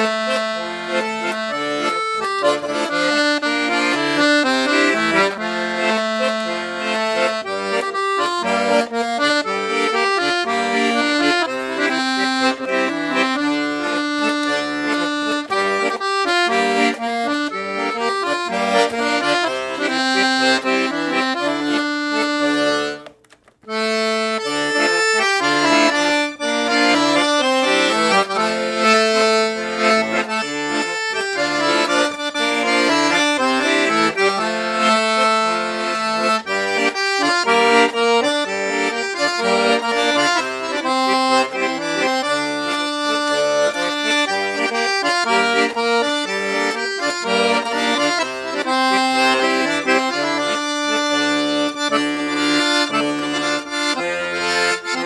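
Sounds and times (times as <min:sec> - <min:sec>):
accordion playing a tune: 0:00.0 - 0:55.0.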